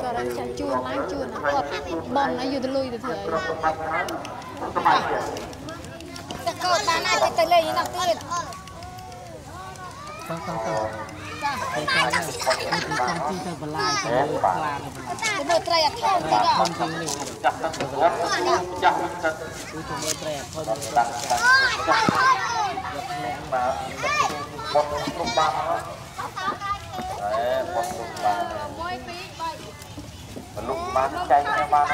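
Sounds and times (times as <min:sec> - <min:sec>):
children talking and calling out: 0:00.0 - 0:31.9
girls and women chattering: 0:00.0 - 0:31.9.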